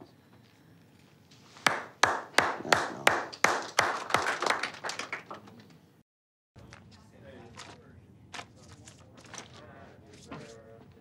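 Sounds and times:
people clapping: 1.6s - 5.7s.

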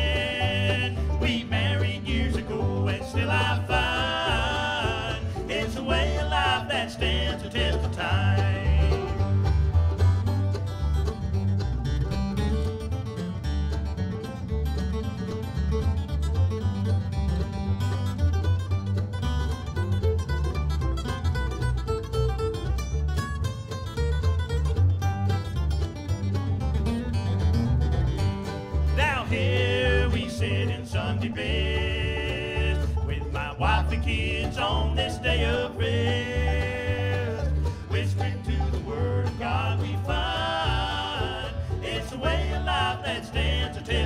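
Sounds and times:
person singing: 0.0s - 9.2s, 29.0s - 44.0s
acoustic guitar picking: 0.0s - 44.0s
bluegrass band playing: 0.0s - 44.0s.

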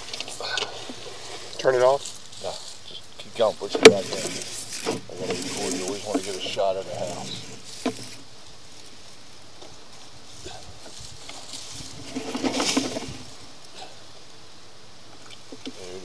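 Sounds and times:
leaves rustling against camera: 0.0s - 16.0s
steady low hiss: 0.0s - 16.0s.

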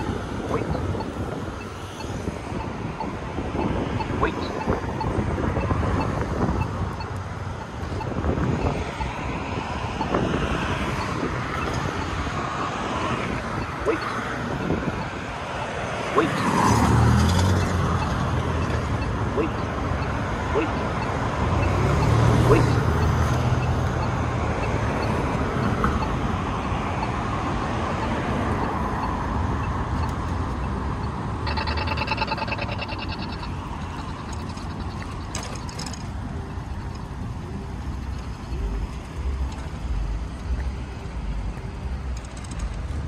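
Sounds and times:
crossing signal ticking buzz: 0.0s - 12.5s, 13.2s - 42.7s
heavy vehicle rumble: 0.0s - 43.0s
road traffic passing: 0.0s - 43.0s.

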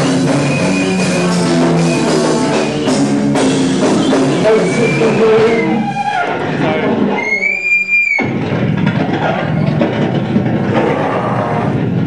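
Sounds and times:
loud heavy band playing: 0.0s - 12.0s.

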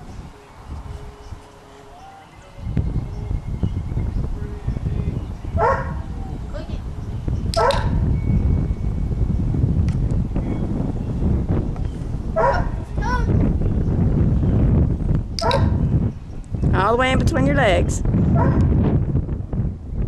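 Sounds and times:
low rumble: 2.6s - 20.0s
puppy yipping: 7.6s - 7.9s.

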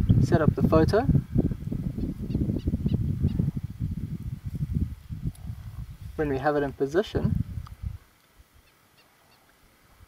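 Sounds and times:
wind buffeting microphone: 0.0s - 8.1s.

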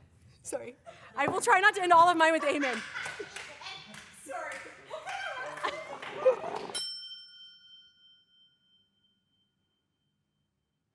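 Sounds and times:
bell-like ding: 6.8s - 10.2s.

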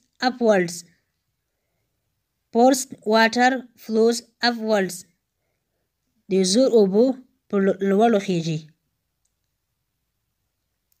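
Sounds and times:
person speaking: 0.0s - 1.2s, 2.5s - 5.2s, 6.2s - 8.8s.

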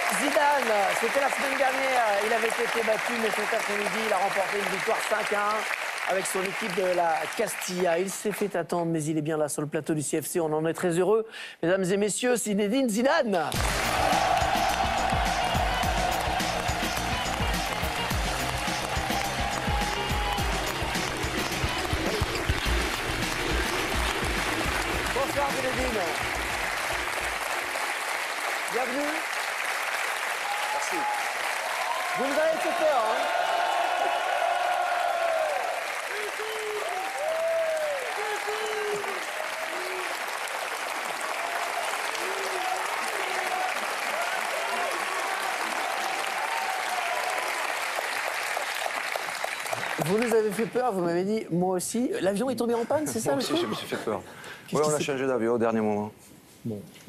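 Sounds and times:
audience applauding and cheering: 0.0s - 8.5s, 13.5s - 51.3s
beat-heavy music: 13.6s - 27.4s.

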